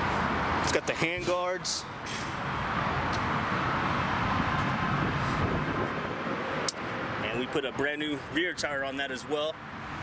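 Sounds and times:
road traffic going by: 0.0 - 10.0.

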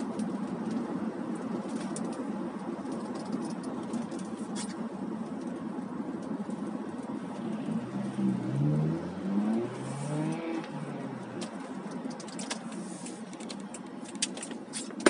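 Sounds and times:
road and engine noise: 0.0 - 15.0
engine note rising: 7.2 - 11.4.

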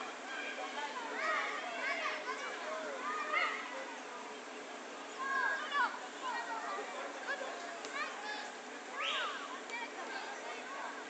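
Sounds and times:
children shouting and calling: 0.0 - 4.2, 5.2 - 11.0.

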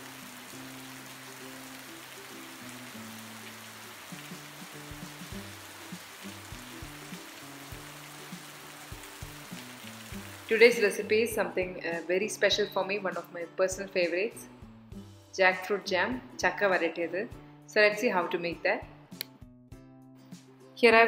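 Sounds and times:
heavy rain: 0.0 - 10.9
soft background music: 0.0 - 21.0.

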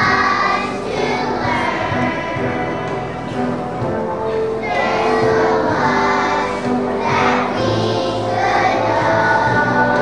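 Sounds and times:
children's choir singing: 0.0 - 10.0
instrumental accompaniment: 0.0 - 10.0.

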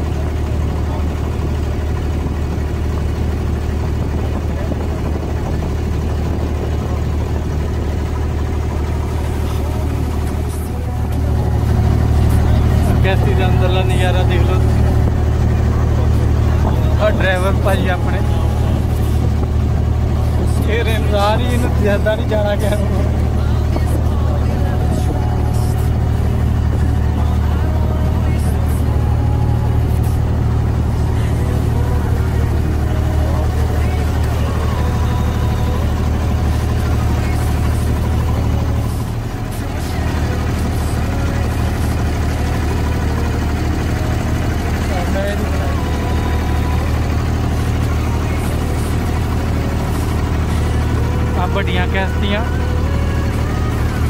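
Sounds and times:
boat engine low drone: 0.0 - 54.0.

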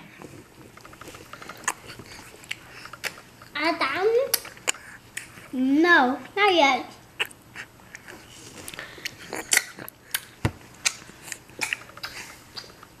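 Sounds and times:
baby sucking on fruit: 0.0 - 3.2, 4.3 - 5.5, 7.2 - 12.8.

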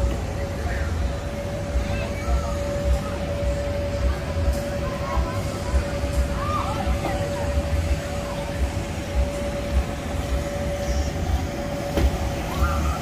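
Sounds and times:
steady hum: 0.0 - 13.0.

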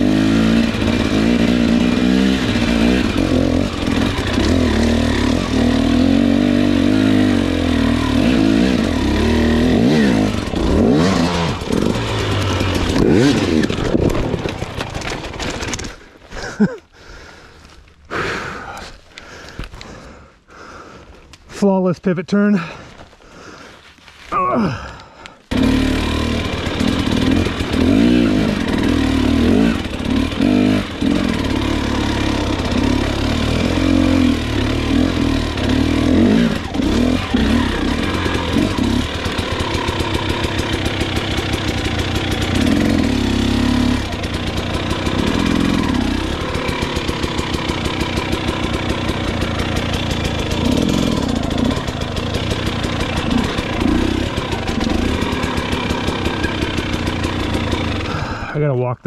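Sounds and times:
motorcycle engine revving: 0.0 - 16.7, 25.5 - 58.5.

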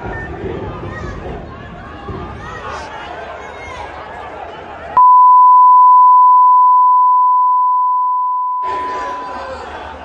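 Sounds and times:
censor bleep tone: 5.0 - 9.3
crowd shouting: 8.6 - 10.0.

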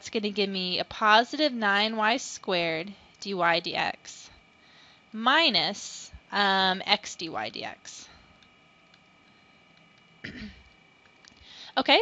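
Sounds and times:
woman clearing throat: 10.2 - 10.7.

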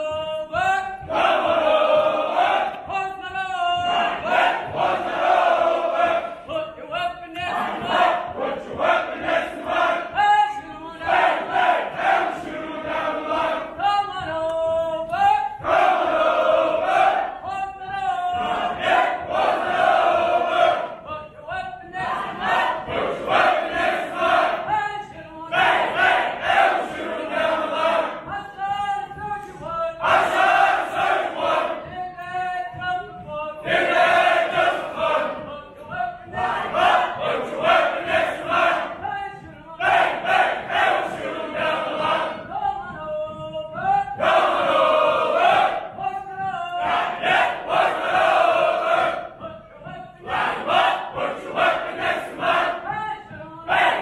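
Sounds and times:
soldiers chanting in unison: 0.1 - 10.4, 11.0 - 14.0, 15.2 - 21.2, 22.0 - 24.8, 25.5 - 28.3, 29.6 - 31.9, 33.6 - 39.0, 39.8 - 43.4, 44.0 - 46.0, 46.8 - 49.5, 50.2 - 52.9, 53.6 - 54.0.

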